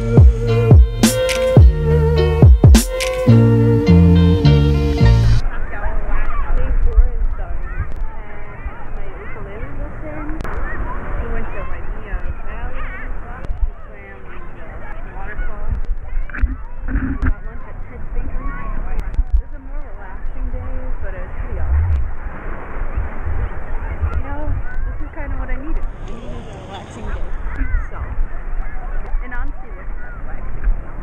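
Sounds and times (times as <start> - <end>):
muffled woman talking: 5.4 - 22.0, 23.4 - 28.3, 29.1 - 30.8.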